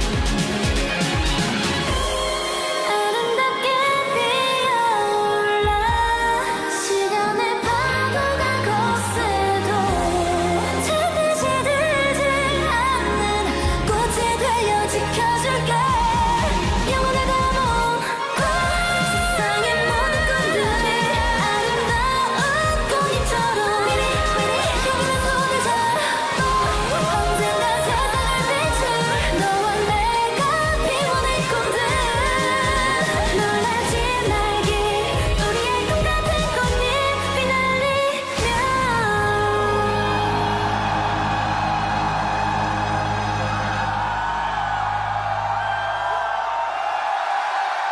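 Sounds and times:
fast driving bass beat: 0:00.0 - 0:02.5, 0:15.8 - 0:25.8, 0:26.4 - 0:37.2
women singing pop song: 0:01.9 - 0:41.9.

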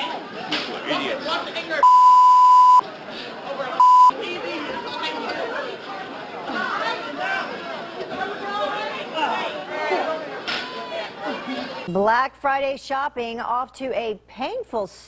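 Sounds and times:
crowd shouting and chattering: 0:00.0 - 0:12.0
censor bleep: 0:01.8 - 0:02.8, 0:03.8 - 0:04.1.

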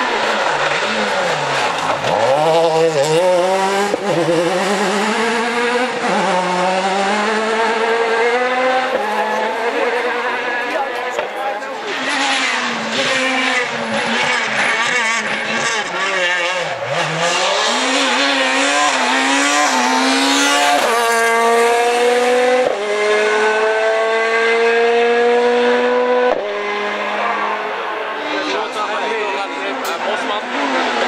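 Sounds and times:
rally car engine revving: 0:00.0 - 0:31.0.

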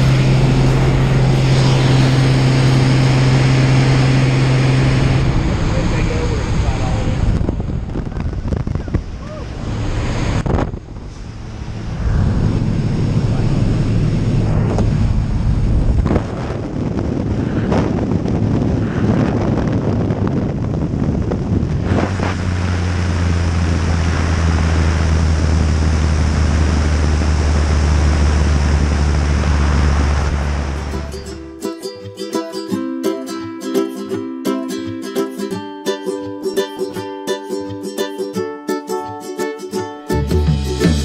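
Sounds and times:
plane engine and propeller drone: 0:00.0 - 0:31.5
wind rushing: 0:00.0 - 0:31.5.

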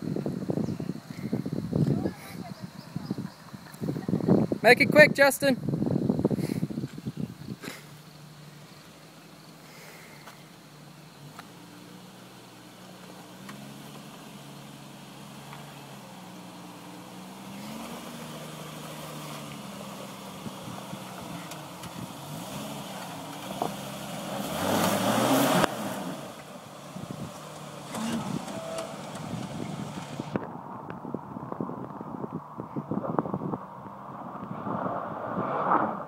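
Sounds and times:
engine labouring uphill: 0:07.6 - 0:31.0.

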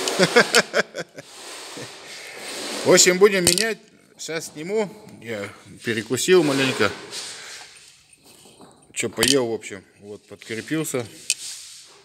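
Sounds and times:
man speaking: 0:02.9 - 0:07.0, 0:09.0 - 0:11.2
steady hiss: 0:10.1 - 0:12.0.

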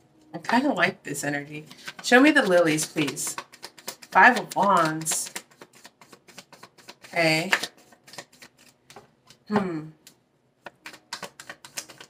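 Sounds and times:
cards being shuffled by hand: 0:01.7 - 0:09.5, 0:10.6 - 0:12.0.

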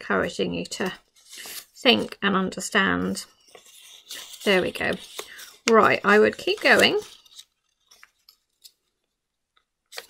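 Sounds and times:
paper crinkling: 0:00.8 - 0:02.2, 0:03.3 - 0:09.2.

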